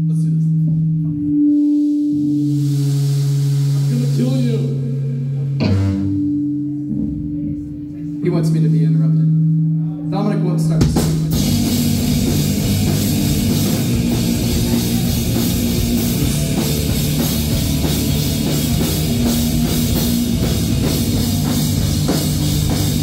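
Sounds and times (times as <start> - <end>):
live rock band playing: 0.9 - 8.2, 10.8 - 23.0.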